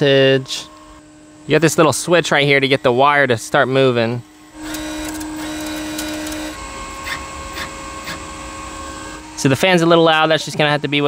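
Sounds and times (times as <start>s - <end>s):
cooling fan whirring: 0.0s - 11.0s
welder wire-feed motor running: 0.0s - 11.0s.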